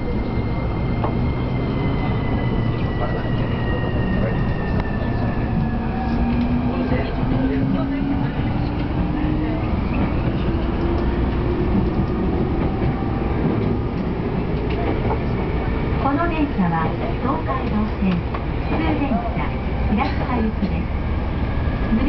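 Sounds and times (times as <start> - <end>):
train wheels rumbling on rails: 0.0 - 22.0.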